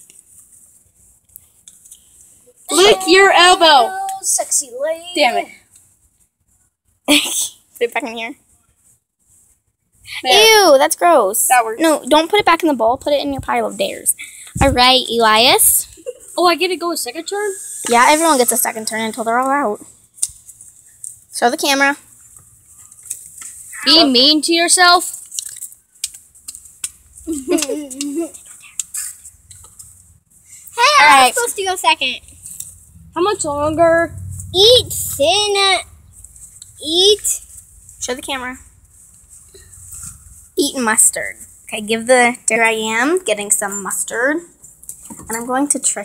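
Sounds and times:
low background noise: 0.0 - 46.0
child shouting ow: 2.7 - 5.5
paper rustling and crinkling: 25.1 - 27.0.

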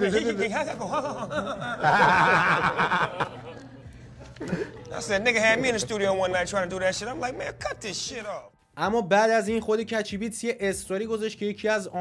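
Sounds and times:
men laughing: 0.0 - 5.0
man talking: 4.9 - 12.0.

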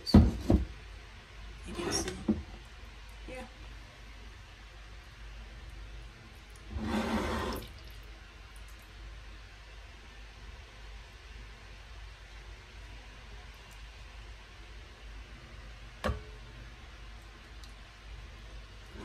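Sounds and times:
juice draining through sieve: 6.4 - 8.9.

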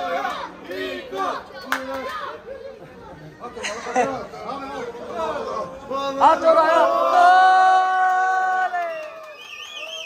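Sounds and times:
people talking and calling out: 0.0 - 8.9.

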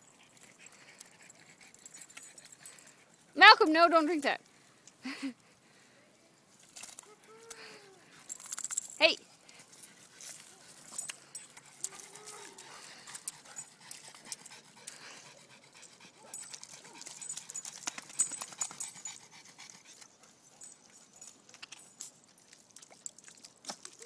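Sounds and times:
dog panting: 0.0 - 3.3, 9.3 - 21.4
paws squelching in mud: 8.1 - 24.0.

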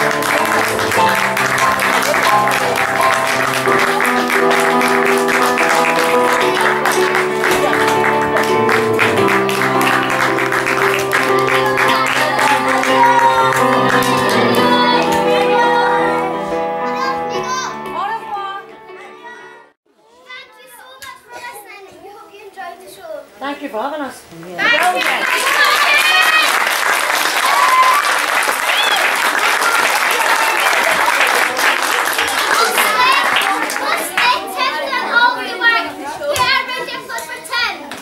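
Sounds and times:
held chord of a song: 0.0 - 19.7
children talking and calling out: 0.0 - 23.4, 29.8 - 38.0.

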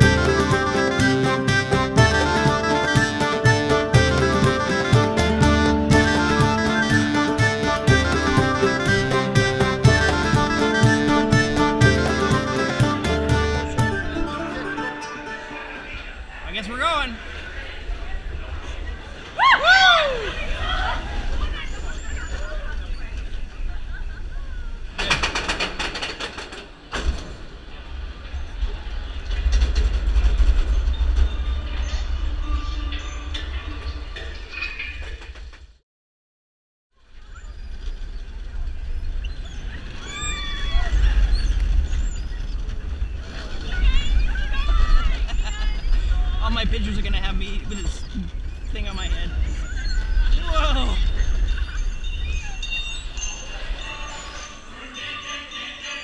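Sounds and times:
accordion music: 0.0 - 16.2
roller coaster rumbling on track: 0.0 - 35.8, 37.0 - 55.1
riders screaming and whooping: 19.2 - 22.8, 37.2 - 46.4.

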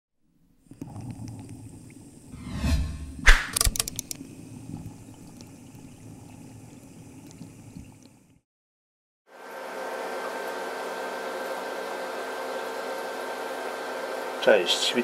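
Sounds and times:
low lingering tail: 2.4 - 3.6
sharp hit: 2.4 - 3.7
rising whoosh: 2.4 - 3.8
glittery clicks: 3.3 - 4.2.

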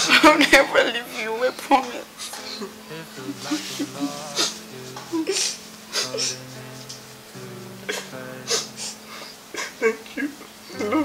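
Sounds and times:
soft background music: 0.0 - 11.0
person laughing: 2.2 - 6.4, 7.9 - 11.0.

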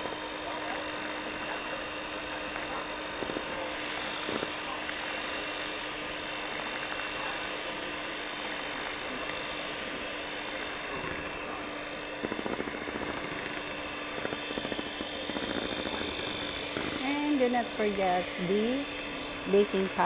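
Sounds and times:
electric hand mixer whirring: 0.0 - 20.0
person speaking: 16.8 - 20.0.

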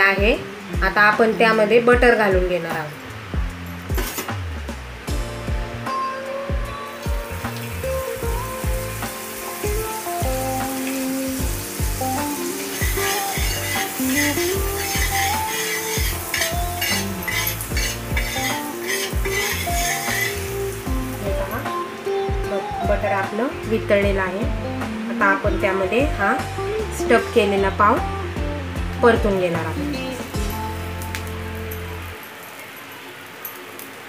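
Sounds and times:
music with a steady beat: 3.1 - 23.1, 24.0 - 32.1
butter sizzling on a griddle: 7.0 - 21.6
steel spatula on griddle: 10.7 - 20.9.

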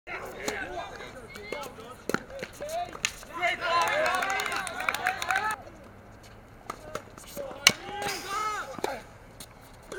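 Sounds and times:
players shouting: 0.1 - 5.6, 6.8 - 9.2
tennis ball hit by racquet: 6.7 - 9.0.

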